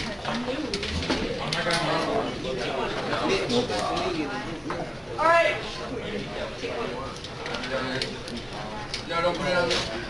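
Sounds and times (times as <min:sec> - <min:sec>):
students chattering: 0:00.0 - 0:10.0.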